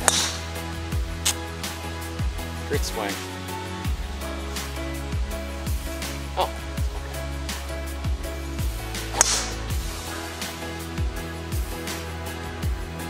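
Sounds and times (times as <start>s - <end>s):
golf club striking ball: 0.0s - 0.6s, 9.0s - 9.7s
background music with beat: 0.0s - 13.0s.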